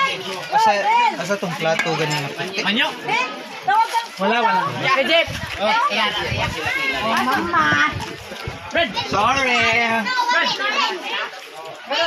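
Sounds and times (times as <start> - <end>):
children calling out and talking: 0.0 - 1.5, 2.4 - 12.0.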